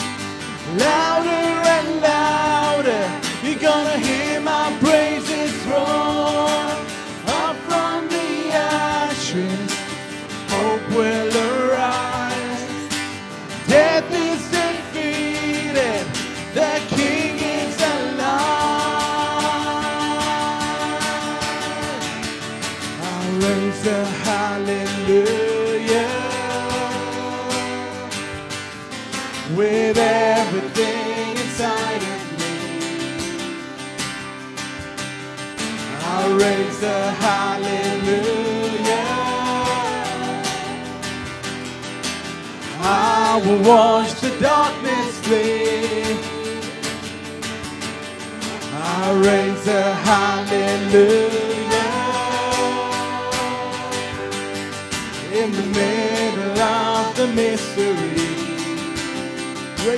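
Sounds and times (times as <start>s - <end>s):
voices singing held notes: 0.0s - 28.7s, 29.3s - 34.0s, 35.8s - 41.8s, 42.5s - 47.4s, 48.6s - 59.9s
acoustic guitar: 0.0s - 59.9s.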